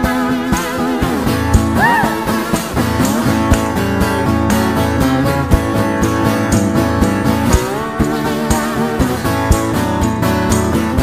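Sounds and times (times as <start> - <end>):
acoustic guitar strumming: 0.0 - 11.0
lead melody with bending notes: 0.0 - 11.0.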